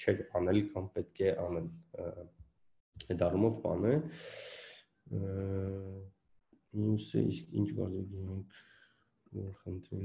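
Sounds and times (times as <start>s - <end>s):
man speaking: 0.0s - 2.3s, 3.0s - 6.1s, 6.7s - 8.6s, 9.4s - 10.0s.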